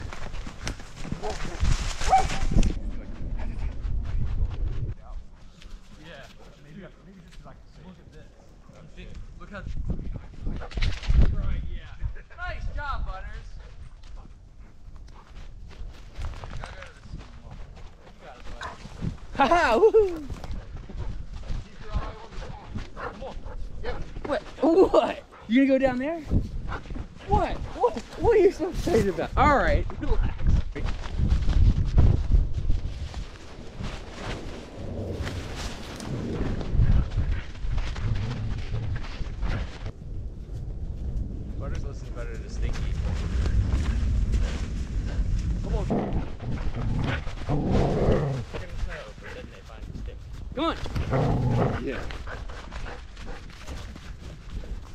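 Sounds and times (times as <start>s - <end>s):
dog footfalls on snow: 0.0s - 2.7s
microphone handling rumble: 0.0s - 5.4s, 26.3s - 54.9s.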